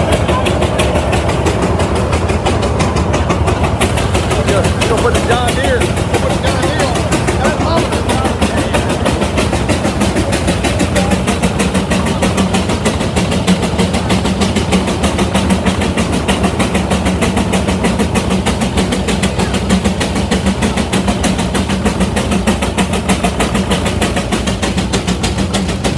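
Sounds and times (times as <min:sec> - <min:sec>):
steady low hum: 0:00.0 - 0:25.9
steam traction engine exhaust beat: 0:00.0 - 0:25.9.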